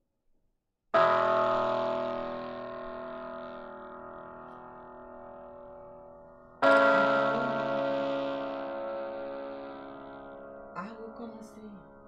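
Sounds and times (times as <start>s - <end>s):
bell-like chord ringing: 1.0s - 12.0s.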